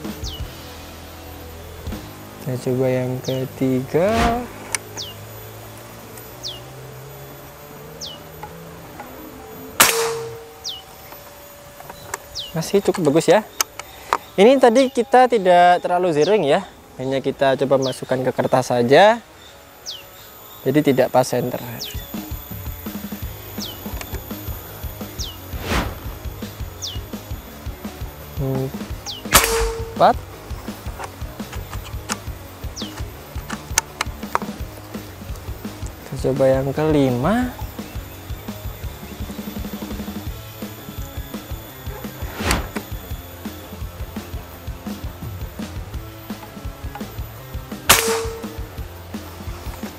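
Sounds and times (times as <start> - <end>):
faint music: 0.0 - 49.9
air rifle shot: 4.0 - 4.8, 9.8 - 10.8, 25.4 - 26.2, 29.1 - 30.8, 42.2 - 43.0, 47.9 - 48.8
high falling chirp: 9.2 - 16.5, 21.5 - 27.6, 28.7 - 30.8.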